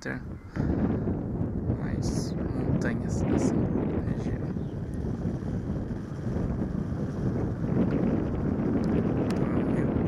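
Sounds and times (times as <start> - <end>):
steady low rumble: 0.0 - 10.0
wind buffeting microphone: 0.0 - 10.0.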